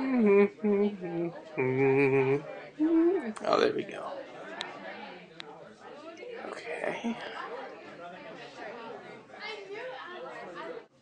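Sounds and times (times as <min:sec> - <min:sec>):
background chatter of voices: 0:00.0 - 0:11.0.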